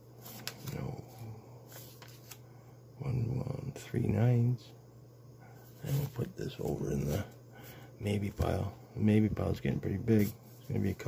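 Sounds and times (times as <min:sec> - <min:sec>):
steady low hum: 0:00.0 - 0:11.0
banknotes clicking and rustling: 0:00.2 - 0:00.9.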